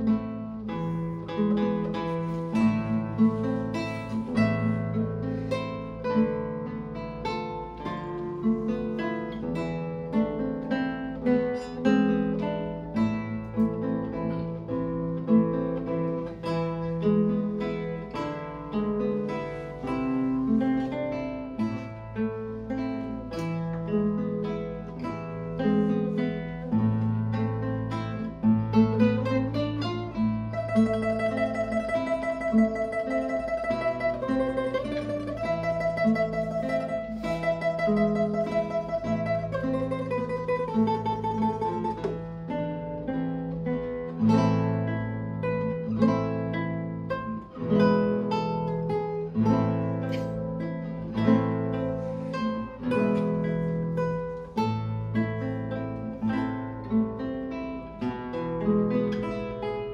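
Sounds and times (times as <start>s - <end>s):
classical guitar duet: 0.0s - 59.9s
guitar tremolo picking: 0.0s - 59.9s.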